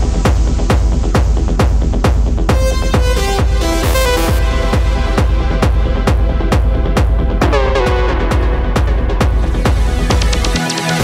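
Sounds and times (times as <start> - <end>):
techno kick drum: 0.0 - 11.0.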